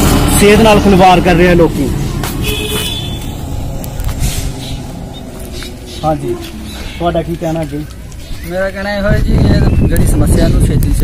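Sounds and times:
road vehicle rumble: 0:00.0 - 0:11.0.

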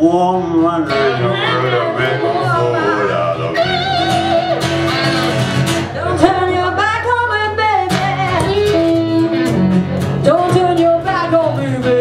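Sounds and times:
electric and acoustic guitars: 0:00.0 - 0:12.0
person singing: 0:00.1 - 0:05.4, 0:10.2 - 0:12.0.

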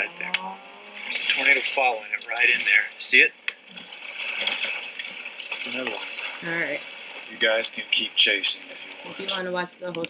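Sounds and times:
rain hissing: 0:00.0 - 0:09.7
person speaking: 0:05.5 - 0:10.0.

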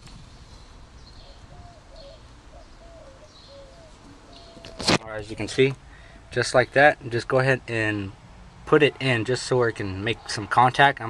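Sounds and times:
bird calling softly: 0:00.4 - 0:05.0.

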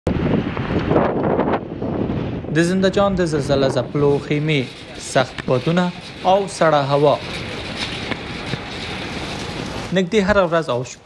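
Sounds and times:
wind blowing across microphone: 0:00.1 - 0:11.0.

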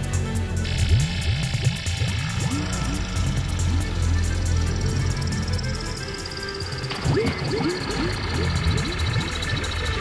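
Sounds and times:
bass drone: 0:00.0 - 0:10.0
fast ticking percussion: 0:00.0 - 0:10.0
chirping synth glides: 0:00.6 - 0:10.0.

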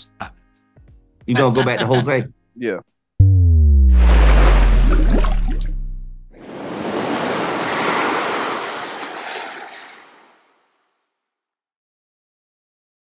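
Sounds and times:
deep synth bass tone sliding down: 0:03.2 - 0:06.4.

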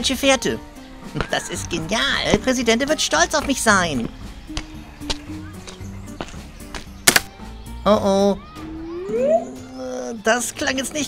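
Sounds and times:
quiet background music: 0:00.0 - 0:11.0
twig snapping underfoot: 0:04.5 - 0:07.3.

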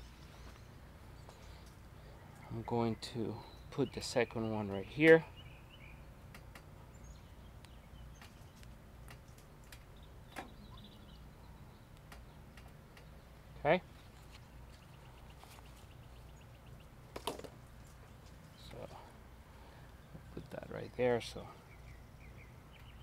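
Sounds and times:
quiet outdoor background: 0:00.0 - 0:23.0.

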